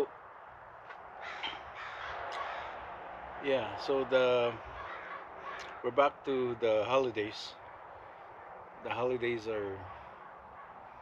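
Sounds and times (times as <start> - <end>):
outdoor background hiss: 0.0 - 11.0
faint bird calls: 1.2 - 2.8, 4.5 - 6.0, 9.6 - 11.0.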